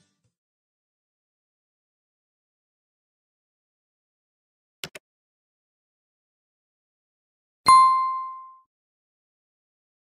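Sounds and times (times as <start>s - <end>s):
notification bell ding: 7.7s - 8.7s.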